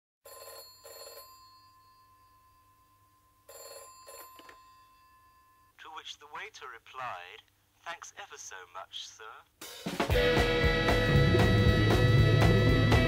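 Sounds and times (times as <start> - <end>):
telephone bell ringing: 0.2 - 5.8.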